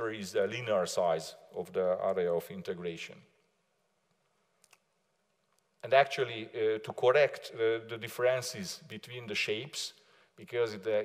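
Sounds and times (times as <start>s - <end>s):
person speaking: 0.0s - 3.3s, 5.8s - 11.0s.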